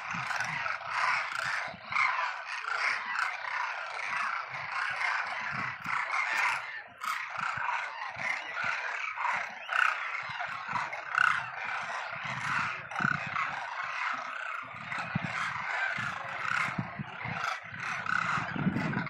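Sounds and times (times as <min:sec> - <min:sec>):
flock of cranes calling: 0:00.0 - 0:19.0.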